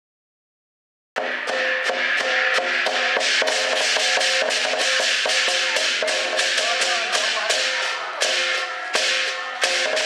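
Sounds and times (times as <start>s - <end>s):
clashing cymbals: 1.2s - 10.0s
drum strikes: 1.2s - 10.0s
ringing gong: 1.2s - 10.0s.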